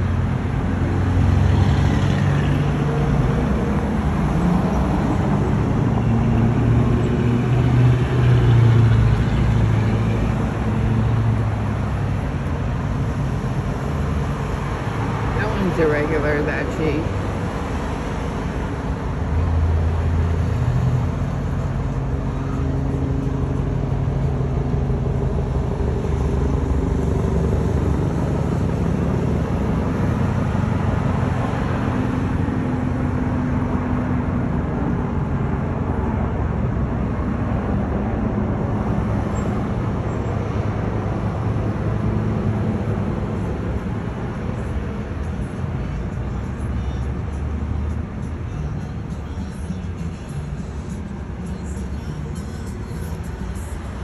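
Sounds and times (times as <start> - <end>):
cars passing on road: 0.0 - 54.0.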